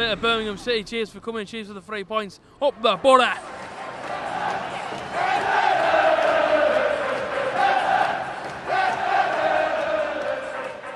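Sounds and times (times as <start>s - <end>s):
crowd chanting: 3.4s - 10.9s.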